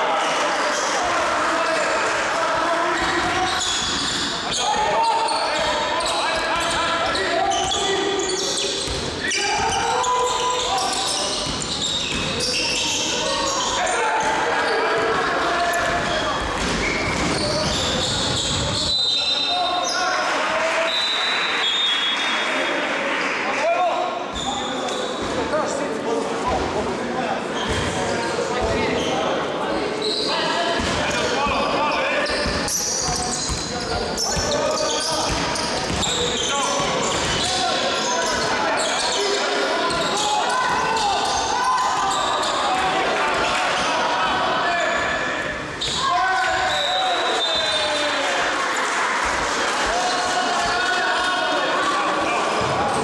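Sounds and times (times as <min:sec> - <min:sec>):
voices echoing in hall: 0:00.0 - 0:53.0
ball bouncing on hardwood court: 0:11.4 - 0:12.4, 0:35.2 - 0:37.4.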